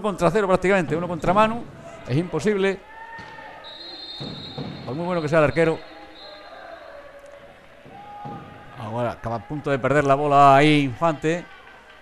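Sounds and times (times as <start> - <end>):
ball bouncing on court floor: 4.2 - 5.2, 7.8 - 8.8.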